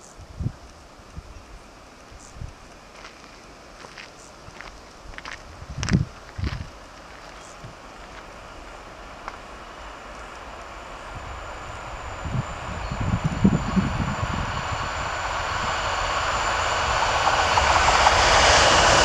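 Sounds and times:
distant train rushing: 0:00.0 - 0:19.0
thin high whine: 0:05.8 - 0:19.0.

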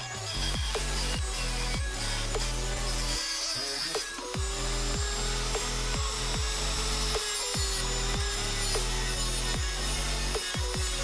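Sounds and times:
electronic music with heavy beat: 0:00.0 - 0:11.0
rotary tool grinding steel: 0:00.0 - 0:11.0.

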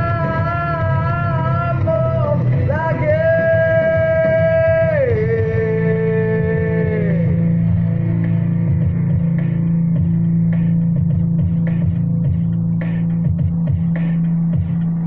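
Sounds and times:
pop-rock instrumental backing track: 0:00.0 - 0:15.0.

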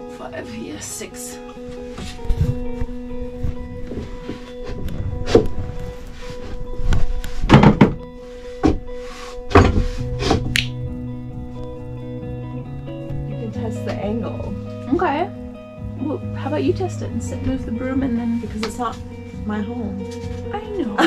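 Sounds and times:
background music: 0:00.0 - 0:21.0
wooden knocks and thunks: 0:07.5 - 0:08.9, 0:09.5 - 0:10.6.

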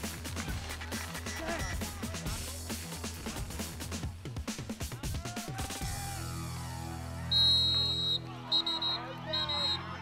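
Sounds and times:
referee's whistle blasts: 0:07.3 - 0:10.0.

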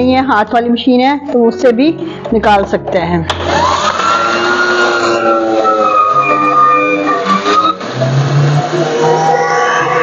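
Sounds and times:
background music: 0:00.0 - 0:10.0
electric juicer motor running: 0:03.3 - 0:10.0.

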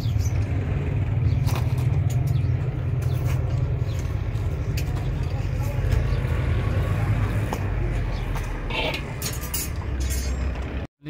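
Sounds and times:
motor vehicle rumble: 0:00.0 - 0:10.9
faint indistinct voices: 0:04.2 - 0:09.2.

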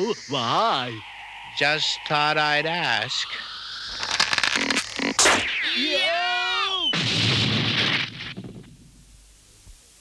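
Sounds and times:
long noisy crash: 0:00.0 - 0:06.0, 0:06.7 - 0:09.0.

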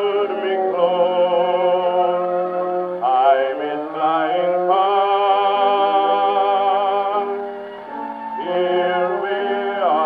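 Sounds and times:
slow ballad on a phonograph: 0:00.0 - 0:10.0.

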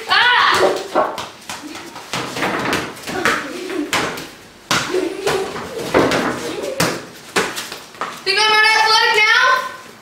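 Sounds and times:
sports balls knocking: 0:00.4 - 0:08.2.

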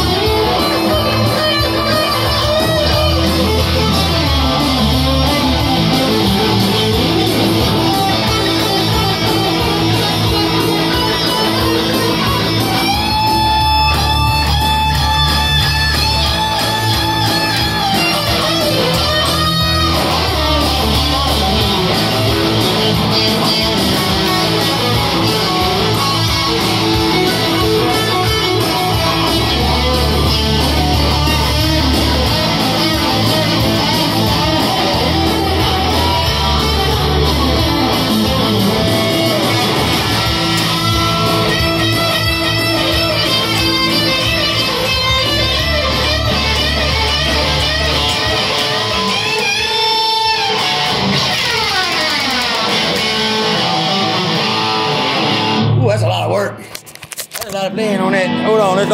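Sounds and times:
electric guitar lead lines: 0:00.0 - 0:58.9.

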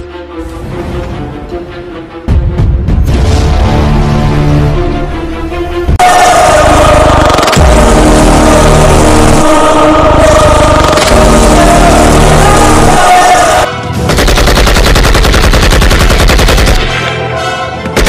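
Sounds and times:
dramatic film score music: 0:00.0 - 0:18.0
rapid machine-gun fire: 0:14.1 - 0:17.0.

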